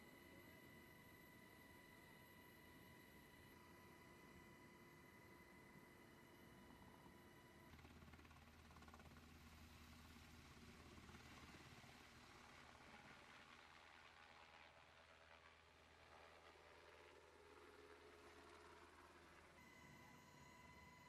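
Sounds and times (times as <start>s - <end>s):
faint helicopter rumble: 0.1s - 20.3s.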